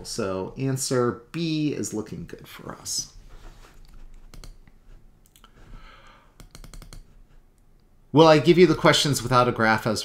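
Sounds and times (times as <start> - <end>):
faint computer mouse clicks: 3.8 - 5.5, 6.4 - 7.9.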